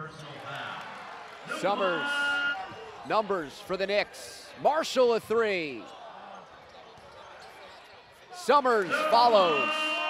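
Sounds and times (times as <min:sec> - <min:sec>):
background crowd noise: 0:00.0 - 0:10.0.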